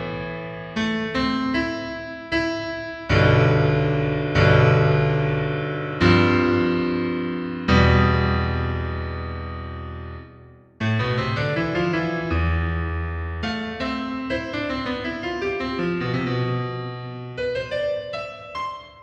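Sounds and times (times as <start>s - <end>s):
solo piano chords: 0.0s - 19.0s.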